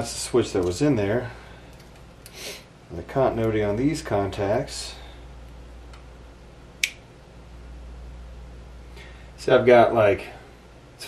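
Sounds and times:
low steady hum: 0.0s - 11.0s
rocker switch click: 6.8s - 7.0s.

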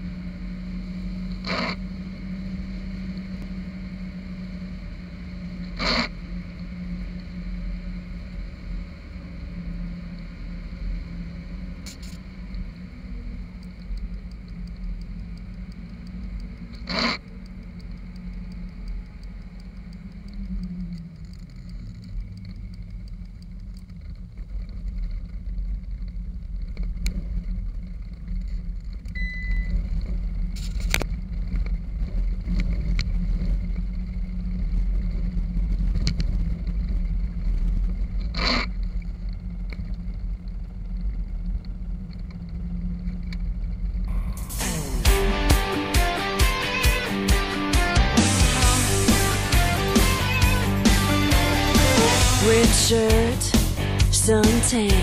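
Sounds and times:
car engine running: 0.0s - 55.0s
tyre noise on wet road: 0.4s - 47.4s.

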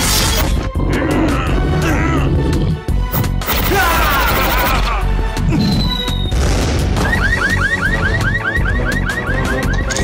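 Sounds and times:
car alarm rapid rising chirp: 7.0s - 9.9s.

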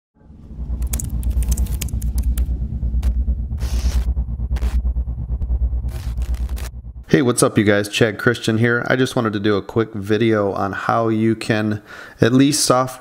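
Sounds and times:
deep pulsing bass rumble: 0.2s - 9.0s
glitchy digital clicks: 5.9s - 6.7s.

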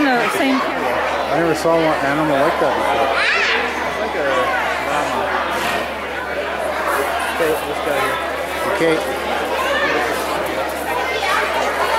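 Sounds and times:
background chatter: 0.0s - 11.9s.

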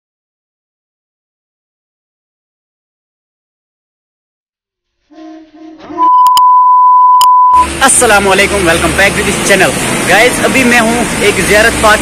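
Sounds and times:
steady test tone beep: 5.9s - 7.7s.

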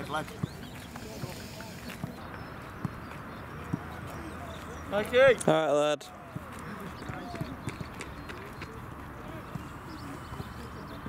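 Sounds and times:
distant shouting voices: 0.0s - 11.0s
footballs being kicked: 2.0s - 4.2s.

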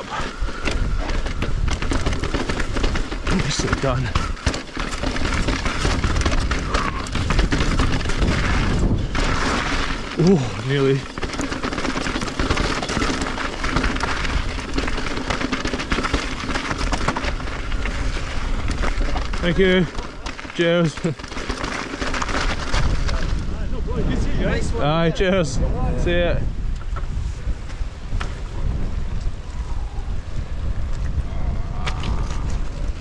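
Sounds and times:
bike rattling and knocking: 0.0s - 24.6s
bike tyres rumbling over stones: 0.0s - 33.0s
wind buffeting microphone: 0.0s - 33.0s.

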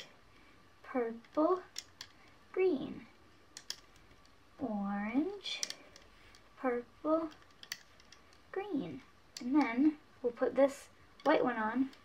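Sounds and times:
girl speaking: 0.9s - 1.7s, 2.6s - 3.1s, 6.6s - 7.4s, 8.6s - 11.9s
rubber bands clicking on pegboard: 1.1s - 2.3s, 3.5s - 4.4s, 5.4s - 6.5s, 7.1s - 9.9s, 11.1s - 12.0s.

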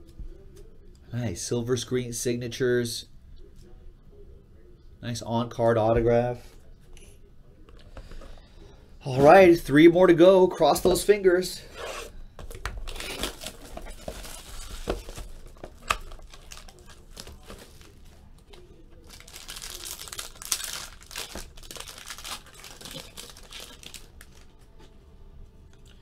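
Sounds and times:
plastic wrapper crinkling and tearing: 12.4s - 24.6s.

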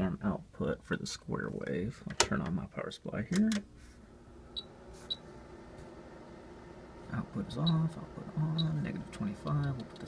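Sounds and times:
power supply beep: 4.5s - 5.2s, 8.5s - 8.8s.

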